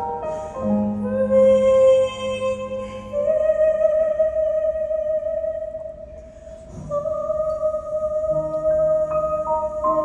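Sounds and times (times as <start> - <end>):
woman singing a high sustained note: 0.0 - 6.2, 6.8 - 10.0
quiet piano accompaniment: 0.0 - 10.0.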